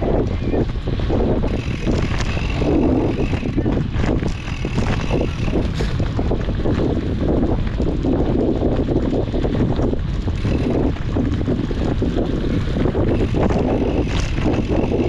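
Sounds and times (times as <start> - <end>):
bike rumbling and rattling on dirt: 0.0 - 15.0
wind buffeting microphone: 0.0 - 15.0.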